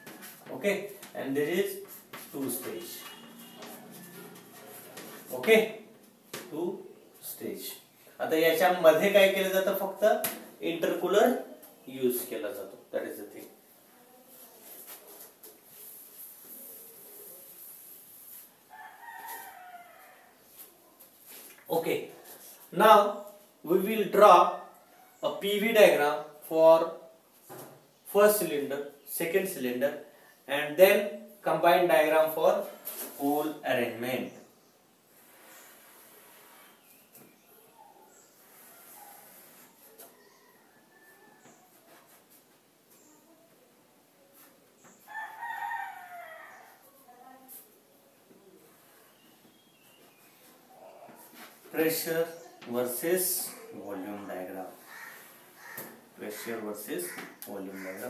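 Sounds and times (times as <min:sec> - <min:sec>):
distant rooster crowing: 0:03.0 - 0:05.3, 0:18.7 - 0:20.4, 0:37.9 - 0:42.0, 0:45.0 - 0:46.9, 0:54.9 - 0:58.0
rooster crowing: 0:03.1 - 0:05.0, 0:18.7 - 0:20.4, 0:45.1 - 0:46.9.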